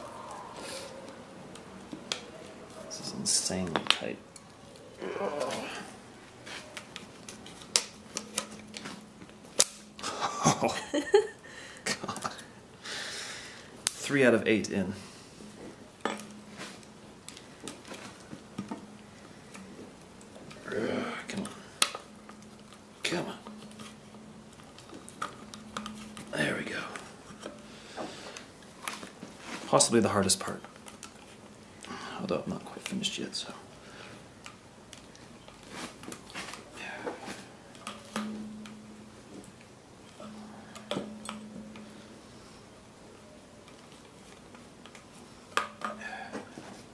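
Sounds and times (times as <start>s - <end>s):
brief vocal sound: 5.0s - 6.0s
drum head ringing low: 38.2s - 39.2s.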